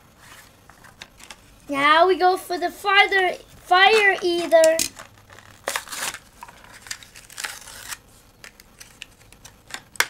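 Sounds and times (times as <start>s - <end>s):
toy cars being handled: 3.7s - 10.0s.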